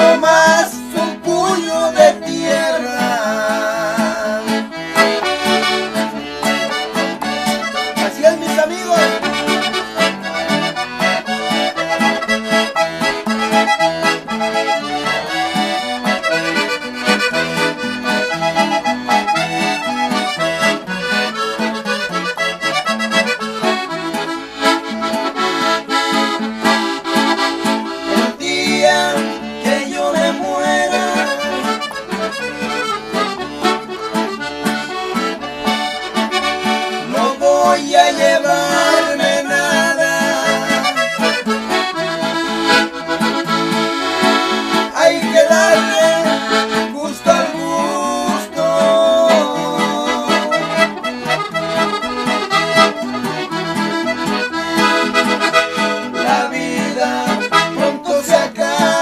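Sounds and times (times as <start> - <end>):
men singing: 0.0 - 4.7, 7.9 - 9.3, 28.1 - 31.8, 37.0 - 41.4, 44.8 - 51.0, 56.1 - 59.0
accordion melody: 0.0 - 59.0
acoustic guitar strumming: 0.0 - 59.0.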